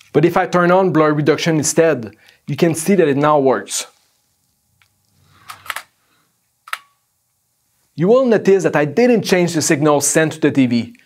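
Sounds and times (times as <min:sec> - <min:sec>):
camera clicks: 0:05.4 - 0:05.9, 0:06.6 - 0:07.0.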